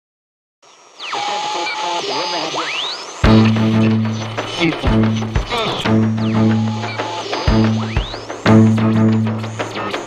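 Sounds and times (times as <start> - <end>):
radio static hiss: 0.6 - 10.0.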